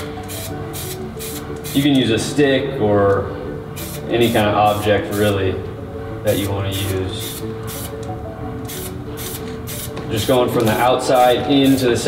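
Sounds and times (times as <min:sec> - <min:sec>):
background music: 0:00.0 - 0:12.0
spray paint can hissing: 0:00.2 - 0:02.0, 0:03.8 - 0:05.3, 0:07.2 - 0:10.0.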